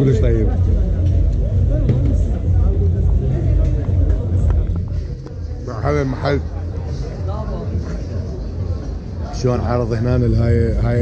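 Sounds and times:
faint voices: 0:00.0 - 0:11.0
low street rumble: 0:00.0 - 0:11.0.

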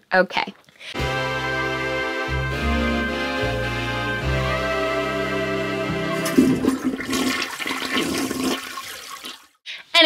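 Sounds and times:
intro music: 0:01.0 - 0:07.2
toilet flushing: 0:05.9 - 0:09.6.

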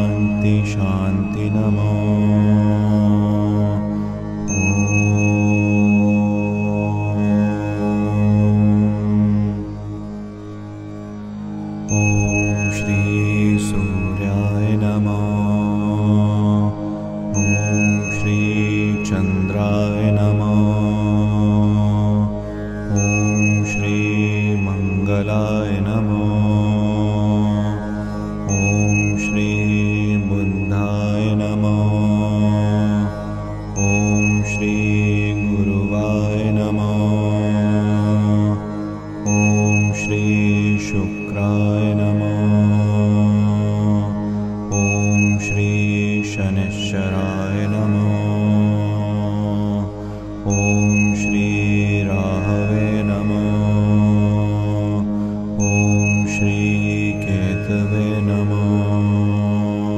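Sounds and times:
mantra chanting: 0:00.0 - 0:09.7, 0:11.9 - 0:59.9
steady low drone: 0:00.0 - 0:59.9
high bell-like tone: 0:04.4 - 0:08.6, 0:11.9 - 0:16.2, 0:17.3 - 0:21.5, 0:22.9 - 0:27.3, 0:28.5 - 0:32.9, 0:33.8 - 0:38.4, 0:39.2 - 0:43.2, 0:44.7 - 0:48.9, 0:50.5 - 0:54.3, 0:55.6 - 0:59.4.

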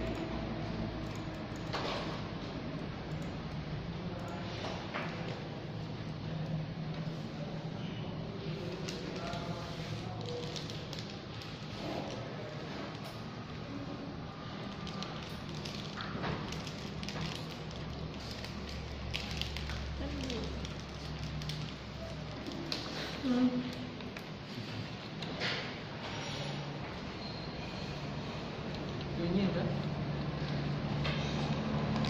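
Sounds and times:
small clicks and rustles: 0:14.5 - 0:25.7.

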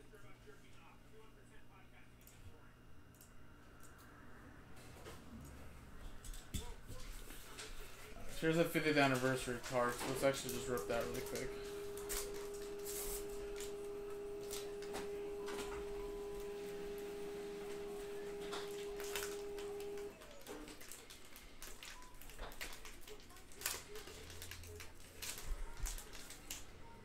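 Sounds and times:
steady hum: 0:00.0 - 0:21.6
wrapper tearing and crinkling: 0:20.2 - 0:26.6.

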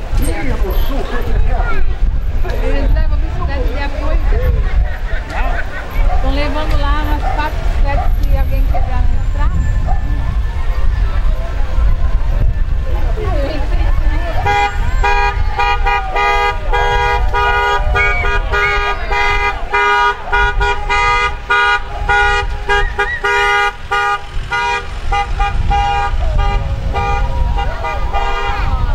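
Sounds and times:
vehicle horns tooting rapidly: 0:00.5 - 0:01.4, 0:14.4 - 0:28.9
people shouting: 0:14.0 - 0:25.4.

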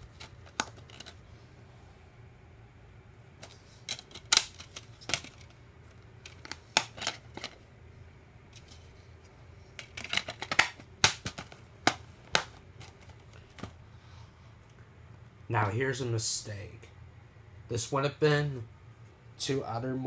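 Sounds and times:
plastic disc case clicks and snaps: 0:00.2 - 0:01.2, 0:03.4 - 0:05.5, 0:06.3 - 0:07.6, 0:09.8 - 0:13.7.

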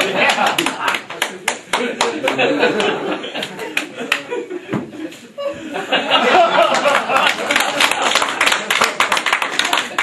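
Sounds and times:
audience clapping: 0:00.0 - 0:04.4, 0:06.4 - 0:10.0
laughter: 0:00.0 - 0:08.7.

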